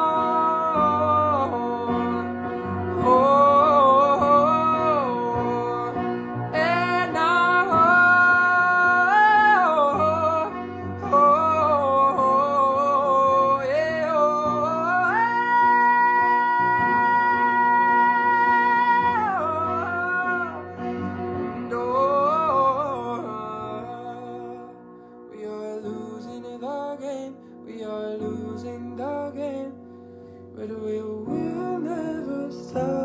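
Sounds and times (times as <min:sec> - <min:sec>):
detuned piano chords: 0:00.0 - 0:29.7.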